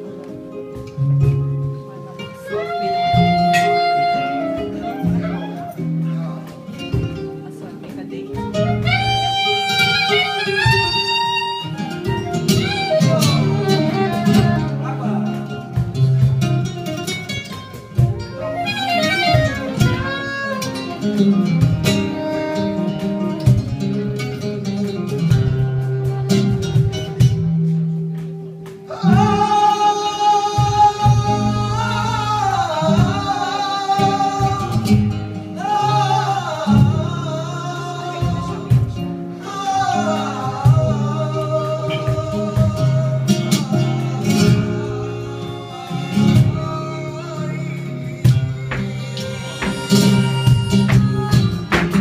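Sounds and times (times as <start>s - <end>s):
flamenco guitar plucking and strumming: 0.0s - 52.0s
soprano saxophone melody: 0.5s - 7.5s, 8.5s - 15.1s, 18.3s - 23.8s, 48.4s - 51.8s.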